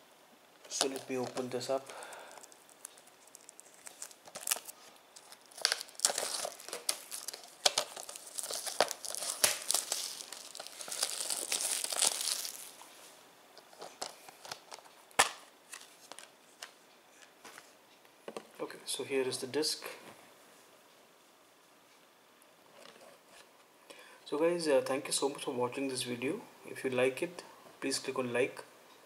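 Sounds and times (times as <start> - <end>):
plastic shrink-wrap crinkling: 0.6 - 13.0, 13.6 - 16.3.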